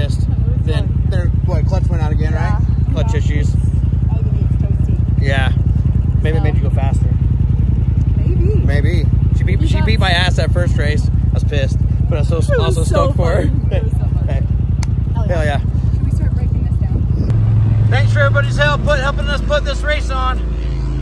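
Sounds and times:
utility vehicle engine idling: 0.0s - 21.0s.

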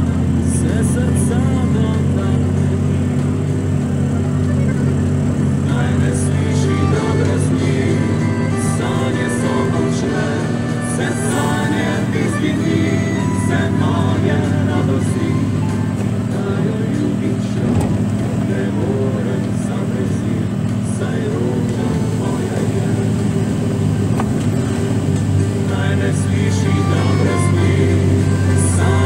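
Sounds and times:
song with singing: 0.0s - 29.0s
truck diesel engine running: 0.0s - 29.0s.

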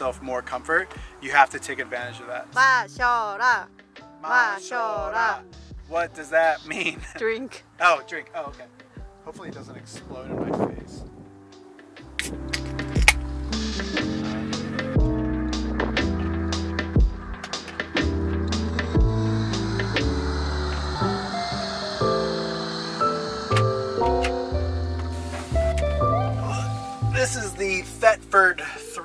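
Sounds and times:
background music with steady beat: 0.0s - 29.0s.

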